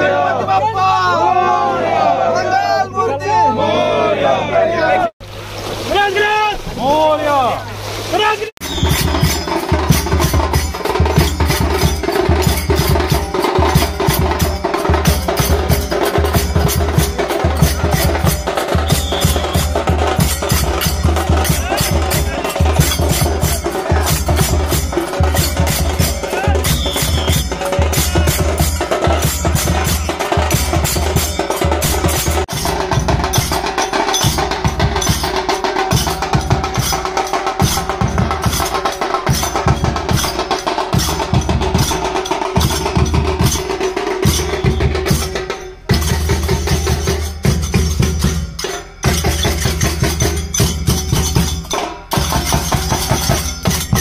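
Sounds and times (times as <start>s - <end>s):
drums: 5.5s - 54.0s.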